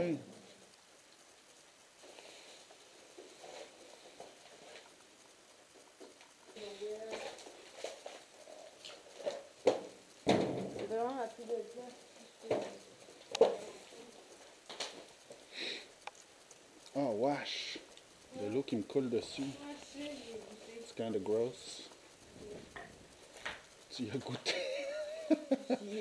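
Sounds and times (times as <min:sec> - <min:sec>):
sharp knocks: 0:09.7 - 0:10.9.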